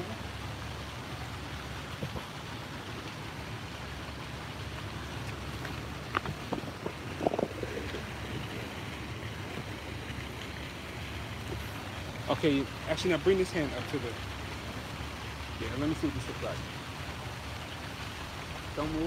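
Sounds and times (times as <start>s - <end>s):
traffic rumble: 0.0s - 19.0s
wind on microphone: 1.8s - 2.4s, 5.2s - 10.7s.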